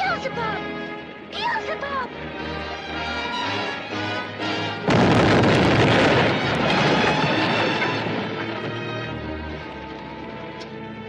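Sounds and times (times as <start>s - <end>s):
orchestral score: 0.0s - 11.0s
loud blast-like crash: 4.9s - 8.5s
dense rumbling noise: 4.9s - 9.2s.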